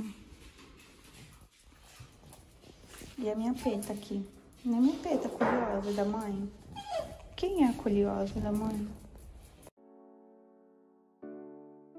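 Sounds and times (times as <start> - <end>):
excited dog: 6.5 - 7.8.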